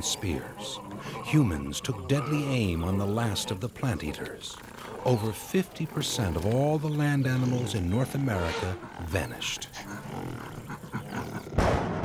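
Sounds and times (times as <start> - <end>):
big cat growling and roaring: 0.0 - 12.0.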